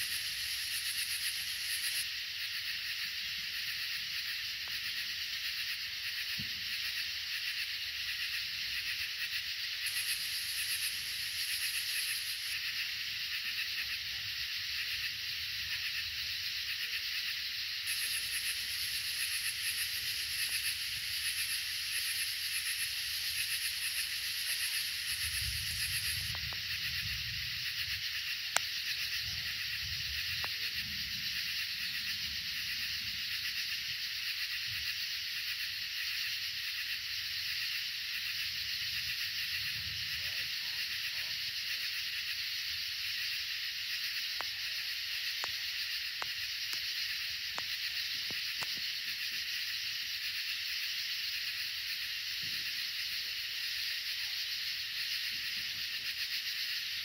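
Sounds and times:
chorus of night insects: 0.0s - 57.0s
pulsing insect trill: 0.0s - 57.0s.

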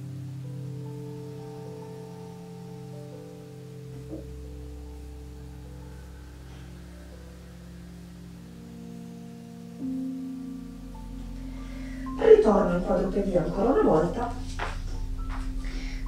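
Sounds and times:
soft sustained background music: 0.0s - 16.0s.

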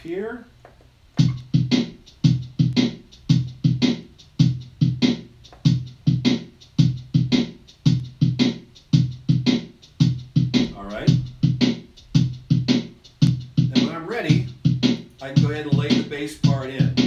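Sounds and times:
drum machine pattern: 0.0s - 17.0s.

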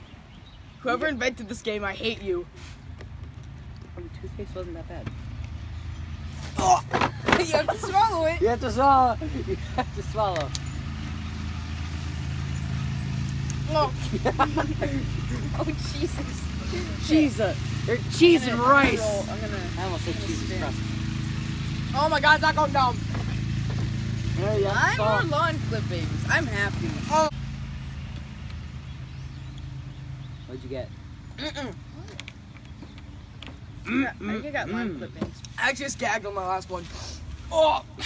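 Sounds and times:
person exclaiming: 6.6s - 8.3s, 37.5s - 38.0s.

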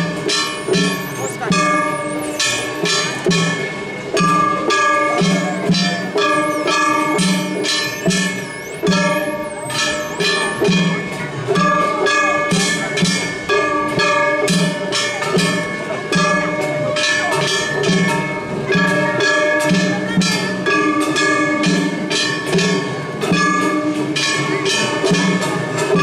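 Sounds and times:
flute melody: 0.0s - 3.6s, 4.6s - 11.2s.

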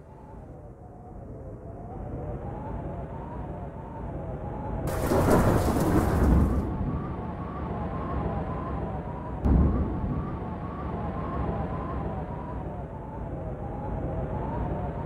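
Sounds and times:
thunder rumble and crack: 4.8s - 13.2s.

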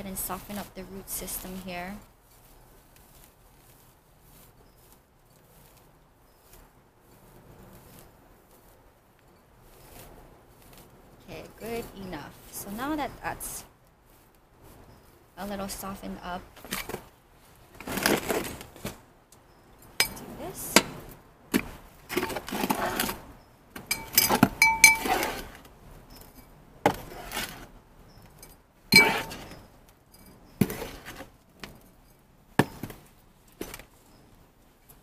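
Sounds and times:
scoop scraping soil: 22.1s - 23.3s, 23.9s - 25.6s, 26.9s - 27.8s, 28.9s - 29.7s, 30.6s - 31.4s
scoop clinking on bucket and pot: 29.0s - 29.5s.

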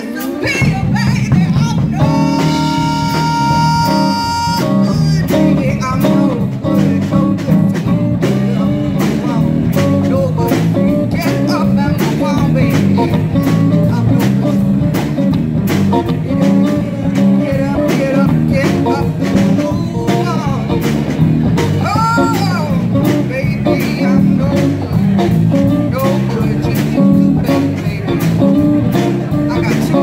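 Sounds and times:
drum kit beat: 0.0s - 30.0s
live band playing: 0.0s - 30.0s.

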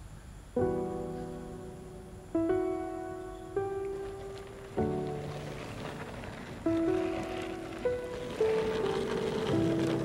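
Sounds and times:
soft piano notes: 0.6s - 10.0s.

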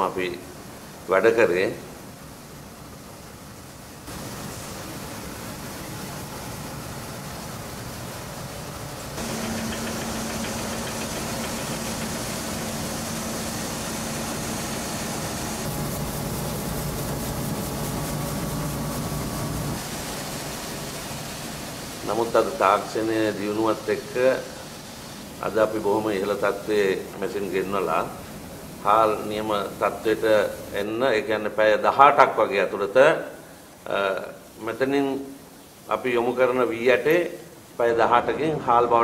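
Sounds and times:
mill machinery drone: 0.0s - 31.3s.

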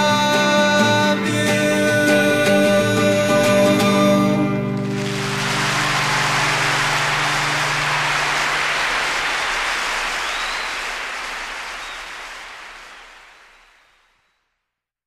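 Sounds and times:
audience applauding: 4.8s - 14.3s.

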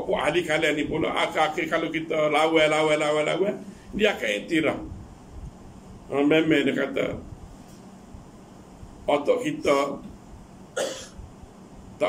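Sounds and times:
man coughing: 10.8s - 11.2s.

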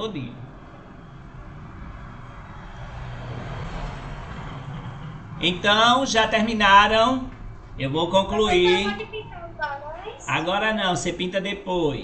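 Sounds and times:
low rushing background noise: 0.0s - 12.0s.

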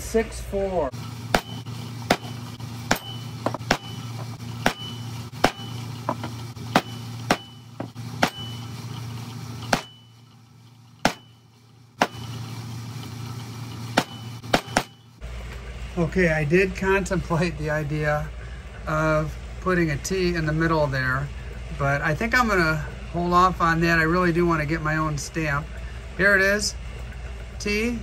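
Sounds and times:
hammer striking metal stamps: 1.3s - 8.6s, 11.0s - 11.4s, 14.0s - 15.1s.

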